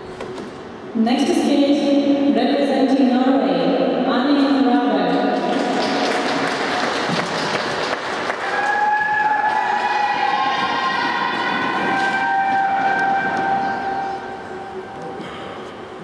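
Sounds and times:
spectators applauding: 5.4 - 12.2.

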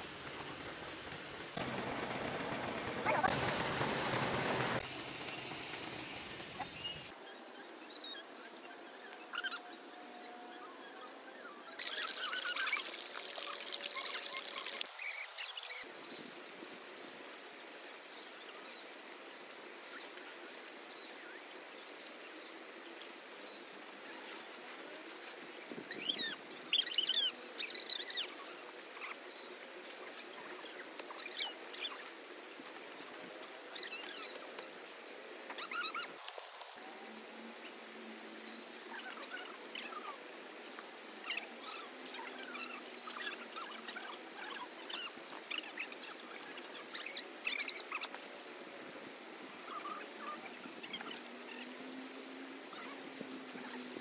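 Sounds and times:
faint background hiss: 0.0 - 54.0.

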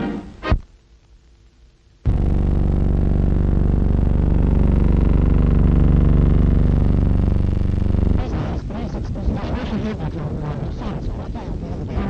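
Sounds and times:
low buzzing drone: 2.0 - 12.0.

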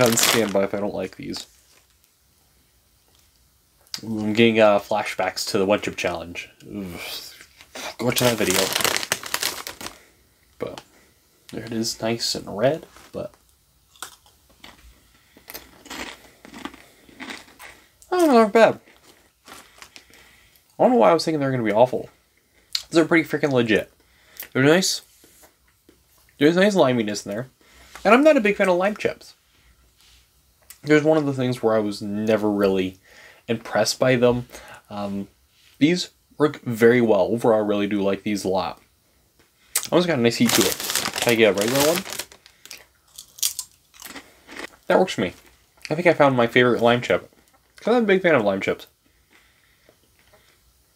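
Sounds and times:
tortilla chip crunching: 0.0 - 0.6, 7.6 - 10.0, 13.9 - 14.8, 15.4 - 20.0, 39.8 - 44.8.

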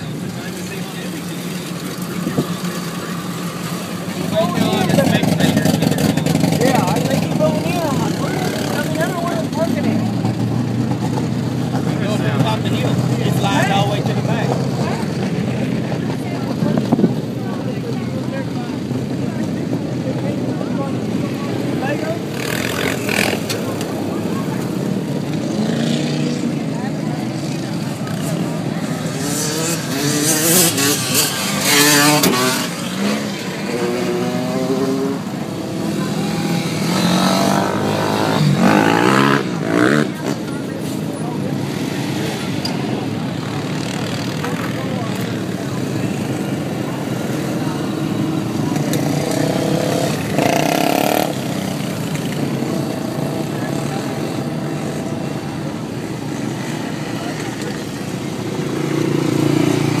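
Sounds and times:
off-road vehicle engines revving: 0.0 - 60.0.

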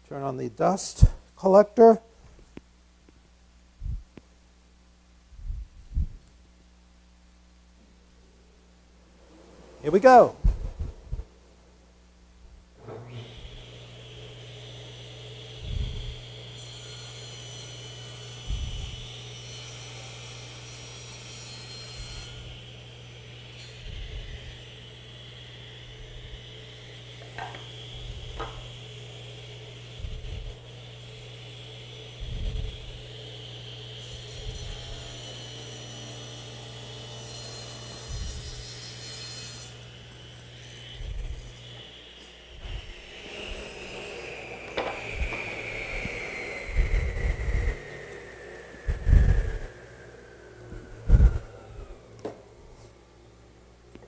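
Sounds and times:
saw cutting wooden board: 12.8 - 52.4
table saw motor running: 12.8 - 52.6.

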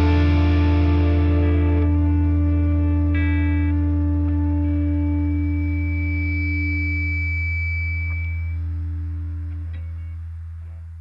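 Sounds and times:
guitar chord ringing out: 0.0 - 10.9
thin high tone: 2.4 - 10.8.

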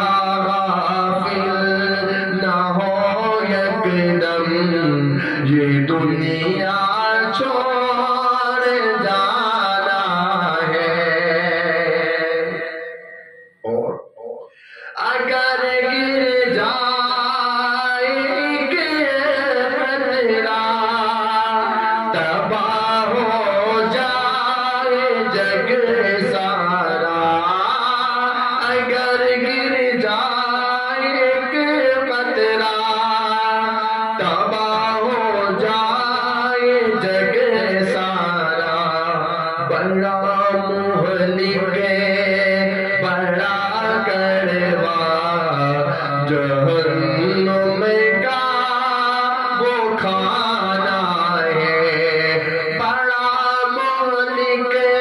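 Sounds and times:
man singing into microphone: 0.0 - 55.0.

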